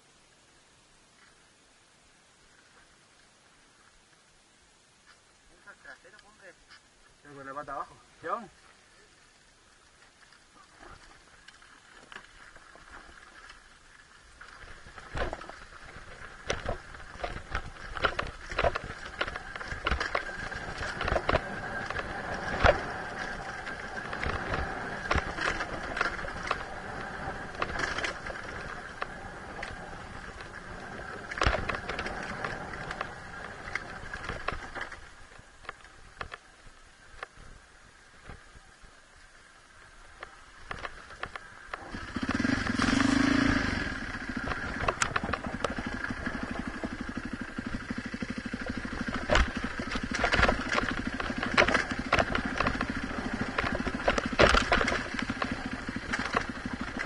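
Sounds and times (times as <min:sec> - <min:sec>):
dirt bike engine: 0:12.0 - 0:36.4, 0:40.1 - 0:57.0
bike knocking and rattling: 0:14.5 - 0:36.4, 0:40.1 - 0:57.0.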